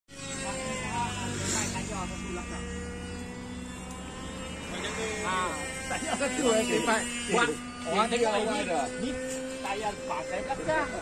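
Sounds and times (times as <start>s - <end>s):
steady mechanical hum: 0.1s - 11.0s.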